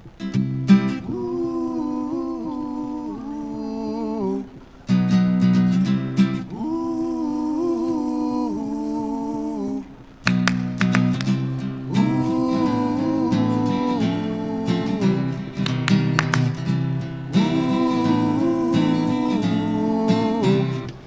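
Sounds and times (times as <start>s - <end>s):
strummed acoustic guitar: 0.0s - 1.3s, 4.6s - 6.6s, 10.2s - 21.0s.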